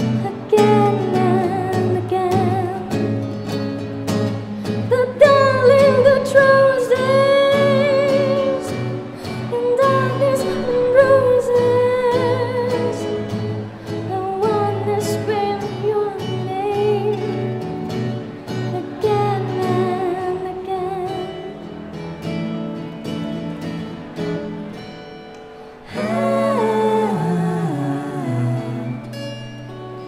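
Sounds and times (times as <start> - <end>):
woman singing: 0.0 - 3.4, 4.7 - 17.8, 18.5 - 21.8, 25.9 - 29.7
plucked acoustic guitar: 0.0 - 30.0.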